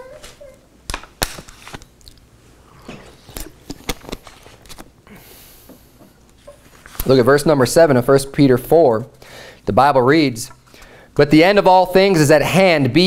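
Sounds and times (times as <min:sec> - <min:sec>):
thin paper pages turning: 0:00.2 - 0:01.9, 0:03.0 - 0:04.9, 0:06.5 - 0:07.2.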